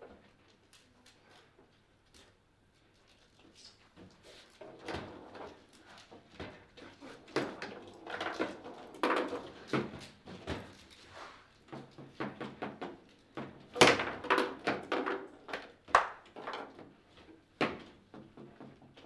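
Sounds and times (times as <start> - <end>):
foosball knocks and clacks: 7.2 - 10.7, 11.8 - 17.0.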